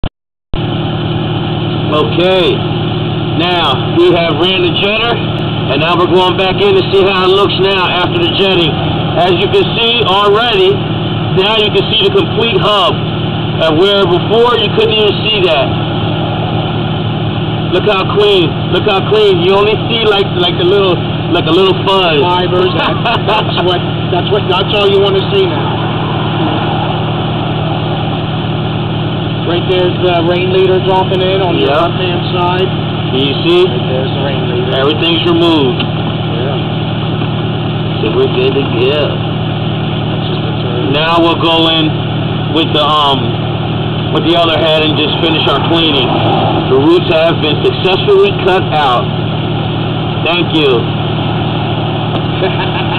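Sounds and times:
engine running steadily: 0.5s - 52.9s.

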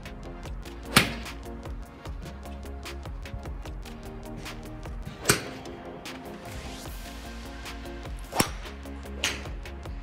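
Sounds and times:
background music with steady beat: 0.0s - 10.0s
golf club striking ball: 8.3s - 9.4s.

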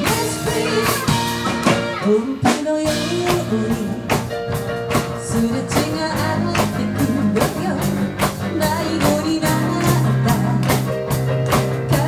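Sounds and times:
band playing pop-rock song: 0.0s - 12.0s
electric guitar: 0.0s - 12.0s.

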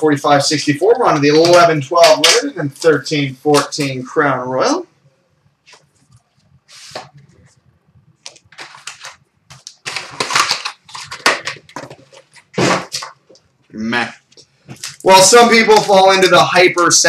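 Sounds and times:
plastic wrap and cardboard ripping: 8.3s - 13.2s.

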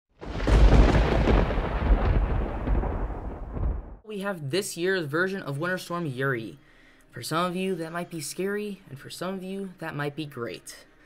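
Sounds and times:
rolling thunder rumble: 0.2s - 4.0s
thunderclap: 0.2s - 4.0s.

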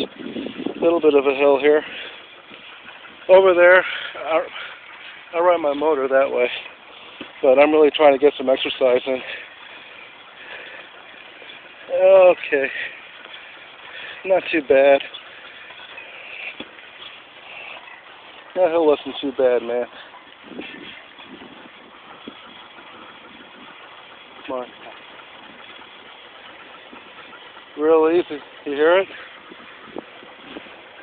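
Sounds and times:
bicycle rolling with light whir: 0.0s - 31.0s.

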